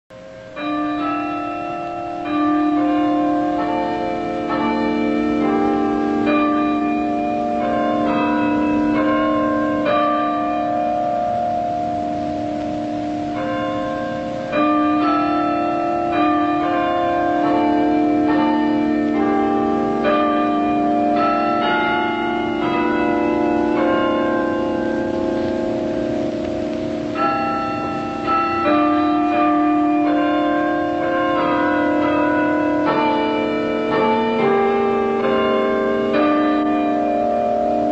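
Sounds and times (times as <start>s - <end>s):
tower bells playing a tune: 0.1s - 37.9s.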